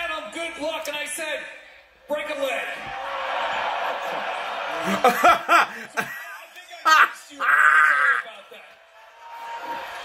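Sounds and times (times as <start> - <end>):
man shouting: 6.1 - 8.4.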